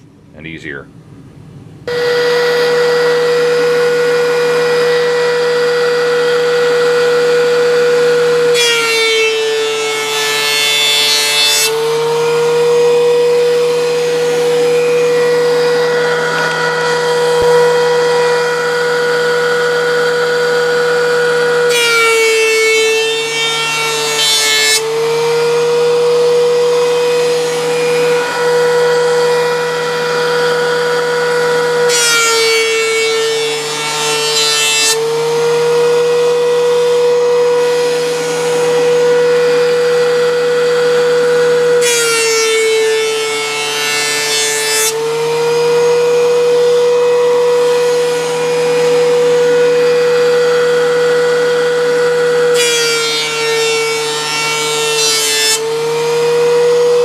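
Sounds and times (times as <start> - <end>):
planer cutting wood hiss: 1.9 - 57.0
planer motor hum: 1.9 - 57.0.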